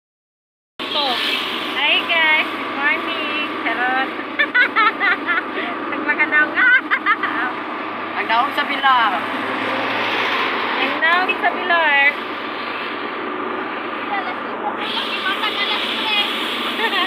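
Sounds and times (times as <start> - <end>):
vehicle engine and road noise: 0.8 - 17.0
people talking: 0.9 - 7.6, 8.2 - 9.2, 10.8 - 12.2, 14.0 - 17.0.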